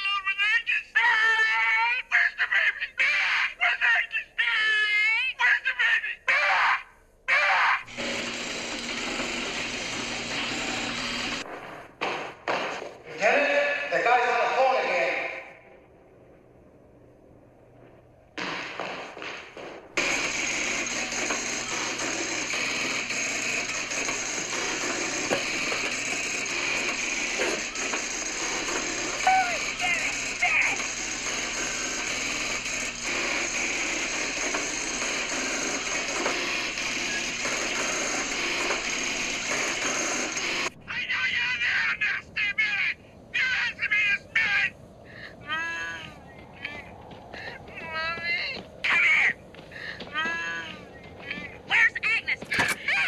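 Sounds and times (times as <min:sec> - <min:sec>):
relays and selectors clattering: 0:20.0 - 0:40.8, 0:52.3 - 0:53.0.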